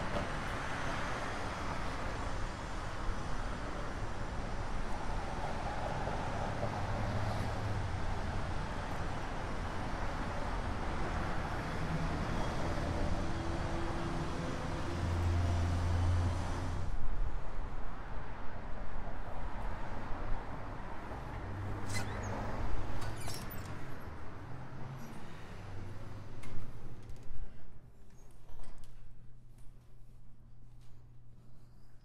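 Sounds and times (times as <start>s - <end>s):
vehicles passing by: 0.0s - 27.0s.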